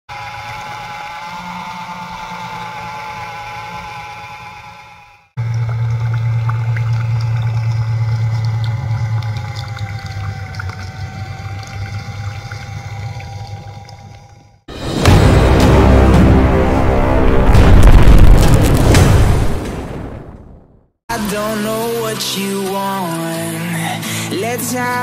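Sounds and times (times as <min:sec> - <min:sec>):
small motor whining and humming: 0:00.1 - 0:14.7
water pouring into a puddle: 0:05.4 - 0:14.1, 0:21.1 - 0:24.3.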